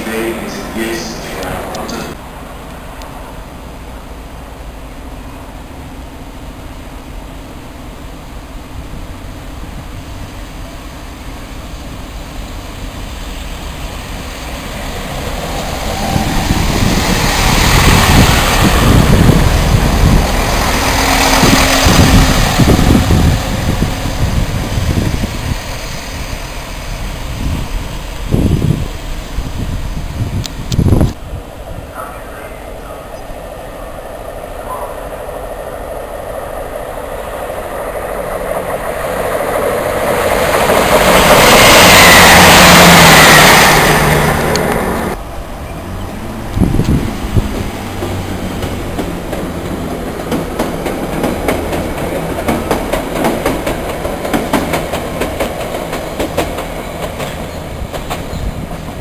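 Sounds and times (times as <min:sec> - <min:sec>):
diesel train passing: 0:00.0 - 0:59.0
train wheels knocking: 0:46.8 - 0:59.0.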